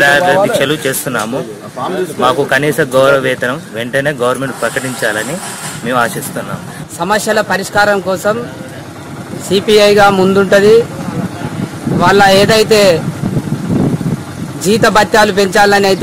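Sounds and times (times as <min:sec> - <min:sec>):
background noise: 0:00.0 - 0:12.3
man speaking: 0:00.0 - 0:13.1.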